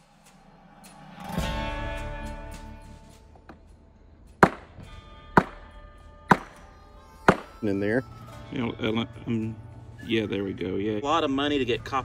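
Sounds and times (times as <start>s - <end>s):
knife chopping metal tubing: 6.3s - 6.6s.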